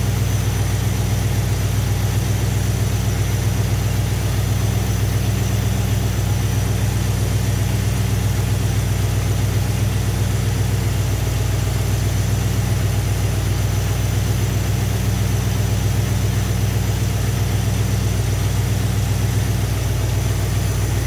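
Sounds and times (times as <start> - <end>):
car engine idling: 0.0 - 21.0.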